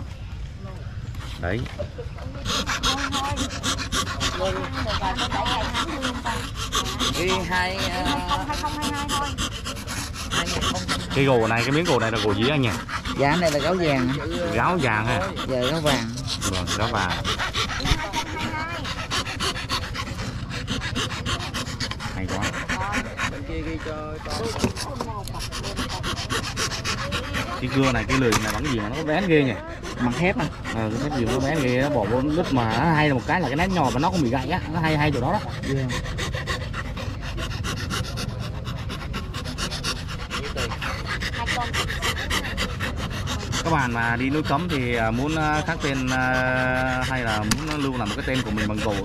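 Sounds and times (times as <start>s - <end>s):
fret saw rasping through wood: 2.5s - 23.4s, 24.2s - 49.0s.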